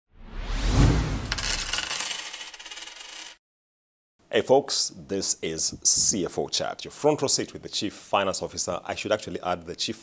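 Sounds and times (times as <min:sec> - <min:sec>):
rattling shimmer sound effect: 0:00.8 - 0:02.9.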